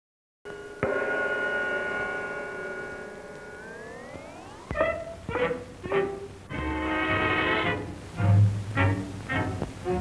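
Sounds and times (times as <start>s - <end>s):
eerie ringing chord: 0.5s - 4.7s
sharp hit: 0.5s - 4.7s.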